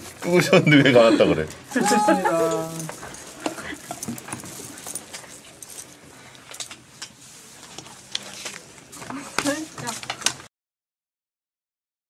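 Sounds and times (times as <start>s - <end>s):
papers handled: 7.6s - 10.5s.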